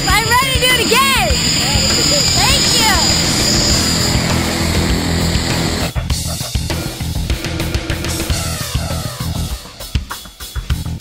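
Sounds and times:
propeller aircraft engine running: 0.0s - 9.6s.

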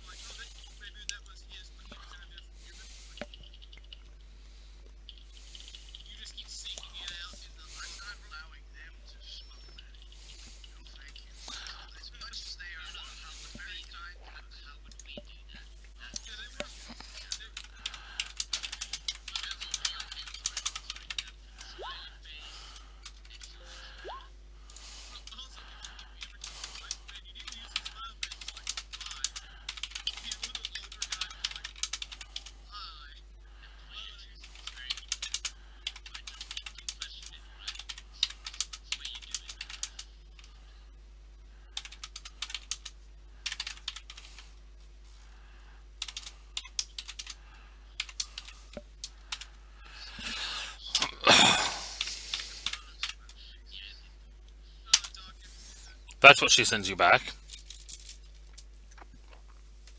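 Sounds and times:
typing on computer keyboard: 17.2s - 21.3s, 25.3s - 32.5s, 34.6s - 40.1s, 41.7s - 44.4s, 46.0s - 47.4s, 48.0s - 49.5s.

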